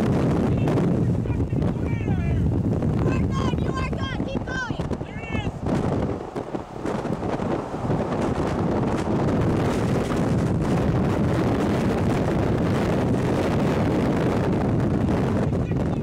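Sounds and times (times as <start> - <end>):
strong wind buffeting microphone: 0.0 - 16.0.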